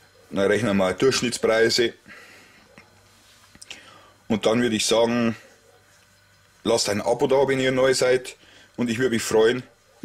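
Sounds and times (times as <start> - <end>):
faint room hiss: 0.0 - 10.0
quick breath: 3.7 - 4.3.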